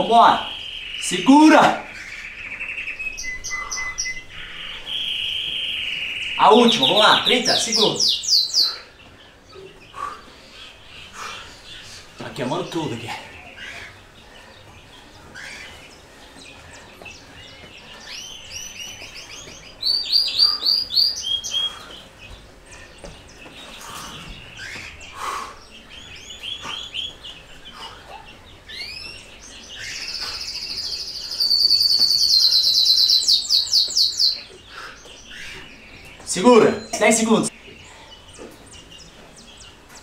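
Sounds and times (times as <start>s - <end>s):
loud fast trilling birdsong: 0.0s - 40.0s
small songbirds chirping: 0.0s - 40.0s.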